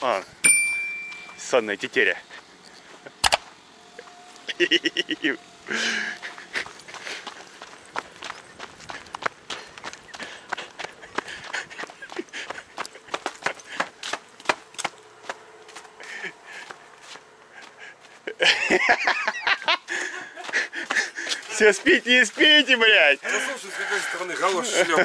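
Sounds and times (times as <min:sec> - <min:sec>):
footsteps on packed dirt: 0:06.2 - 0:18.3, 0:20.1 - 0:25.0.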